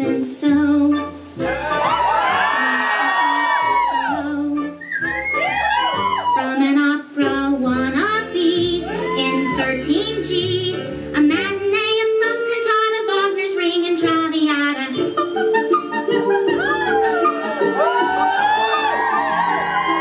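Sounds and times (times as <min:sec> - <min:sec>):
soprano singing operatic show tune: 0:00.0 - 0:20.0.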